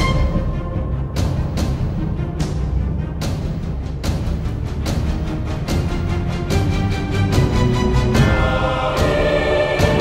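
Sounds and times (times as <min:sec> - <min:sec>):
orchestral music with choir: 0:00.0 - 0:10.0.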